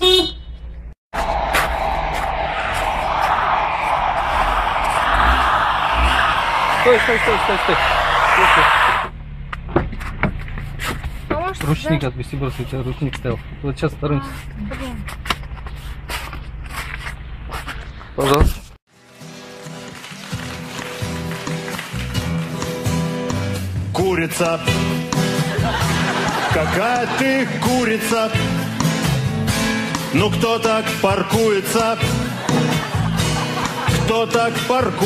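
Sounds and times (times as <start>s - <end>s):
car horn toot: 0.0s - 0.7s
car engine revving: 1.2s - 14.6s.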